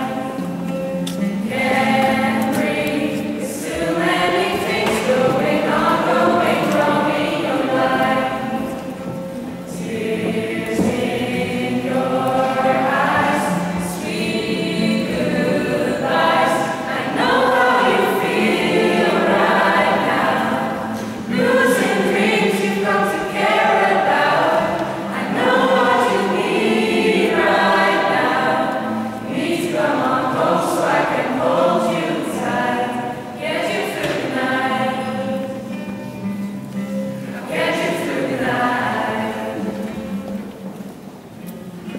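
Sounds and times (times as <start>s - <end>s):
group singing together: 0.0s - 35.9s, 37.2s - 40.2s.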